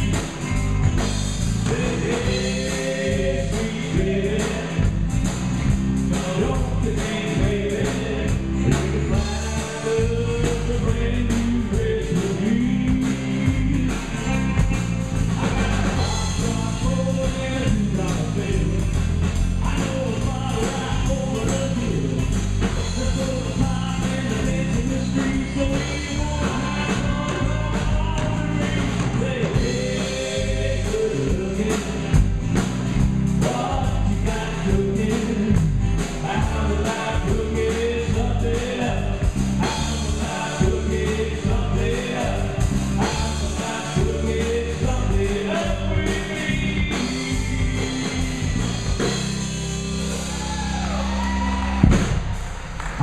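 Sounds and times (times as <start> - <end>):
man singing lead: 0.0 - 0.6, 1.5 - 32.2, 33.0 - 49.3
live band playing: 0.0 - 53.0.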